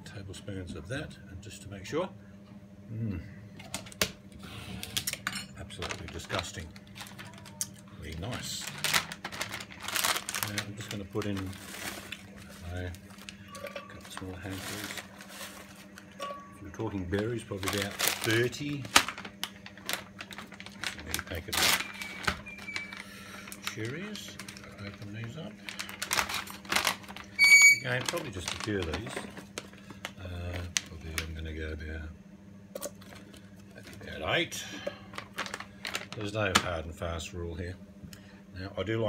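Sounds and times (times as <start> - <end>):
steady low hum: 0.0 - 39.0
plastic packaging crinkling: 4.8 - 31.4, 32.8 - 36.8
plastic rustle: 5.7 - 16.2, 17.1 - 31.3, 35.1 - 36.8.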